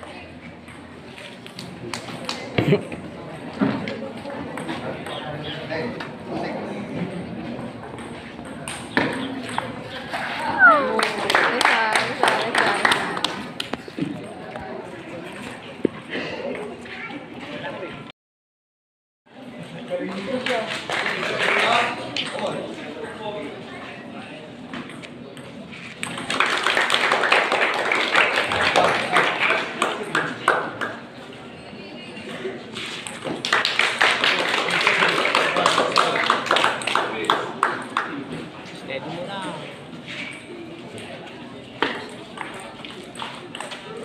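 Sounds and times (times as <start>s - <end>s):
spectators chattering: 0.0s - 18.1s, 19.3s - 44.0s
high-pitched falling cry: 10.4s - 11.2s.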